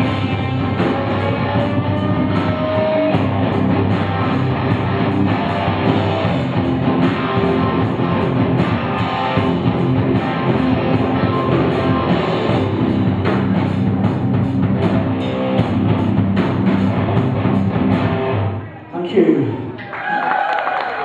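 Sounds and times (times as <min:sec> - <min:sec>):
drum kit: 0:00.0 - 0:18.6
electric guitars: 0:00.0 - 0:18.9.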